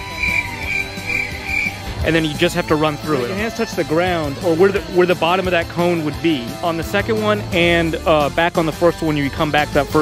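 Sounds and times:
pulsing high note: 0.0s - 4.1s
background music: 0.0s - 10.0s.

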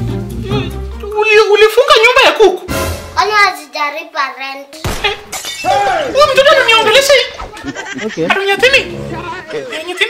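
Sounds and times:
man talking: 8.0s - 10.0s.

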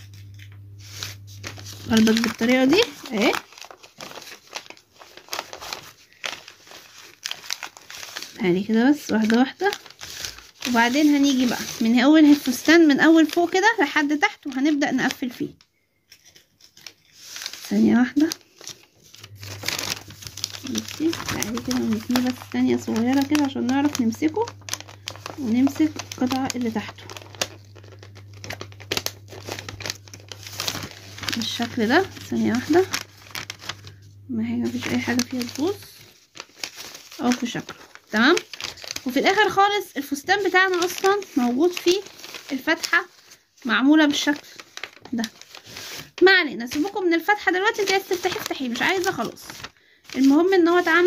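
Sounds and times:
paper crinkling and rustling: 0.0s - 51.0s.

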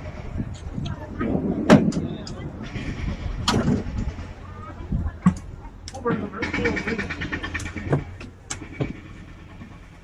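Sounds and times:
people talking: 0.0s - 9.0s.

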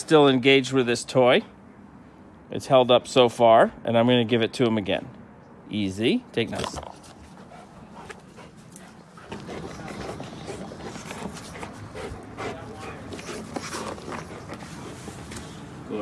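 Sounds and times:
dog panting: 7.1s - 15.3s
dog chewing toy clicks and scrapes: 9.2s - 15.0s.

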